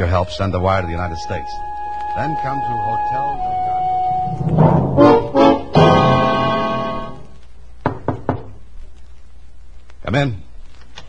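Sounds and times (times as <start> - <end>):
knocking on a door: 7.8 - 8.6.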